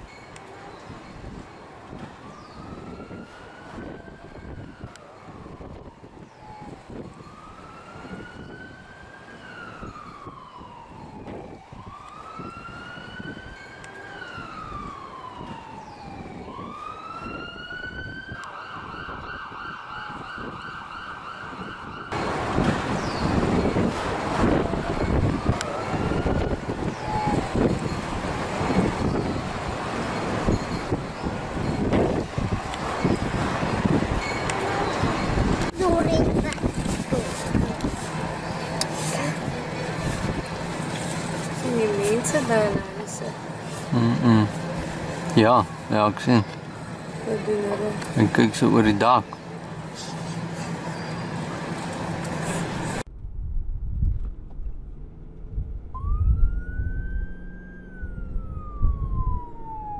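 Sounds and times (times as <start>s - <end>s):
emergency vehicle siren wailing: 0.3s - 53.1s, 55.4s - 59.9s.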